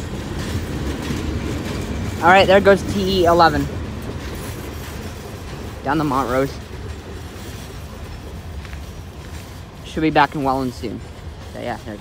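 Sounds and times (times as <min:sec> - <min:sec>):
train wheels rumbling on track: 0:00.0 - 0:12.0.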